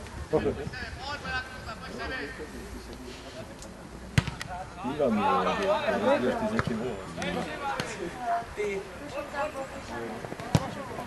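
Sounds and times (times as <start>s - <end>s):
faint players' voices: 0.0s - 11.0s.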